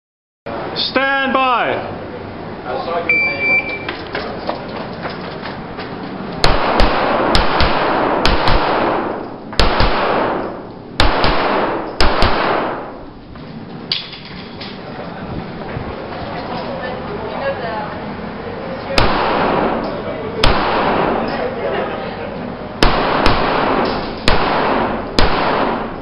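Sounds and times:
pistol shots echoing: 6.4s - 13.1s, 19.0s - 21.4s, 22.8s - 26.0s.

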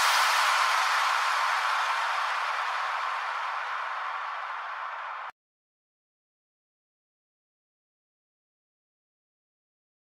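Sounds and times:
electronic white noise hiss: 0.0s - 5.3s.

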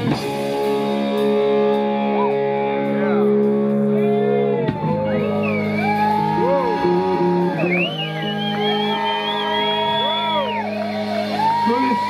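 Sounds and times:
drums: 0.0s - 12.0s
electric bass: 0.0s - 12.0s
electric guitar bending notes: 0.0s - 12.0s.

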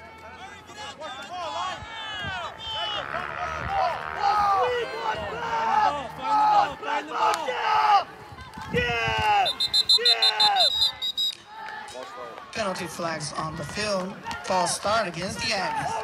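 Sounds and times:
spectators and players yelling: 0.0s - 16.0s
referee's whistle trilling: 9.4s - 11.4s.

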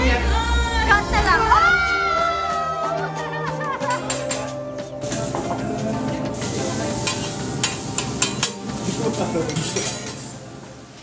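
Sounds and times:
steaks sizzling on griddle: 5.0s - 11.0s.

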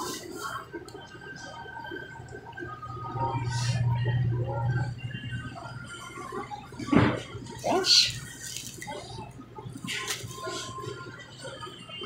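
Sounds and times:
faint background voices: 2.8s - 12.0s.

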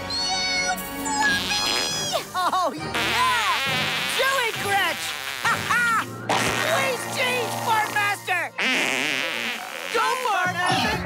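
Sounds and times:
cartoon fart sound: 2.9s - 4.4s, 5.0s - 6.9s, 8.6s - 10.5s.

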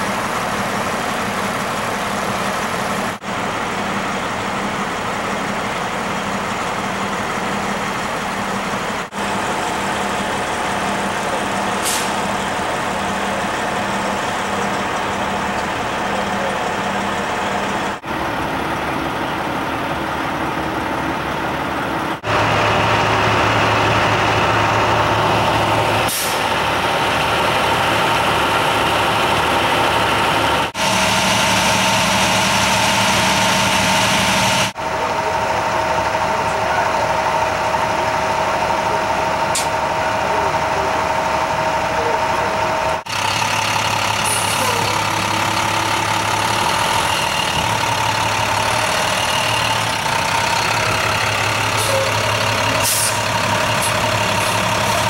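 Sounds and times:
vehicle engines idling: 0.0s - 55.0s.

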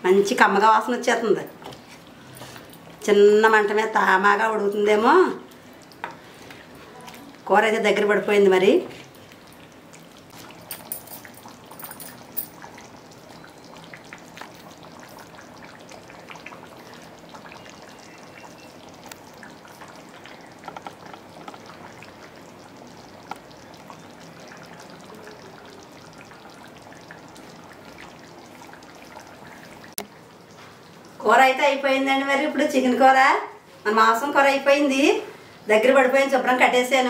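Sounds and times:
curry sizzling and bubbling: 0.0s - 37.0s.

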